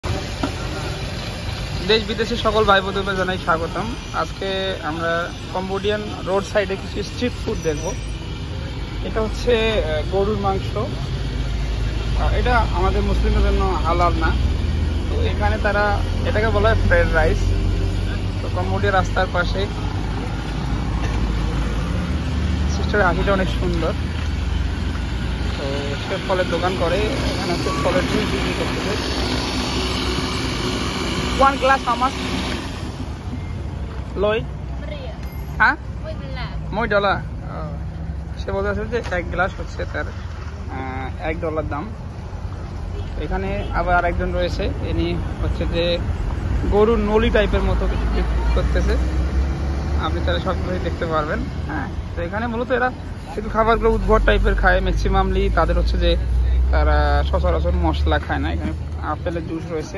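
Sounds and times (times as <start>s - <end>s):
car engine rumble: 0.0s - 59.9s
people talking: 1.8s - 8.1s, 25.6s - 29.2s, 50.0s - 59.9s.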